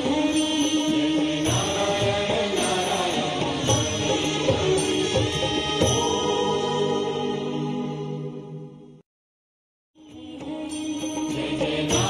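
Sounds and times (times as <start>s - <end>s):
devotional chanting with music: 0.0s - 9.0s, 10.0s - 12.0s.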